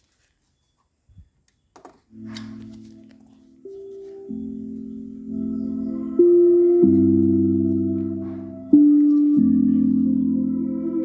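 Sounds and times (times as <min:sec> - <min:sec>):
sustained low synth note: 0:02.2 - 0:11.0.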